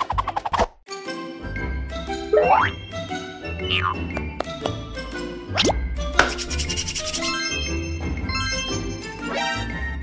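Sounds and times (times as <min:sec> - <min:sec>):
children's background music: 0:00.3 - 0:10.0.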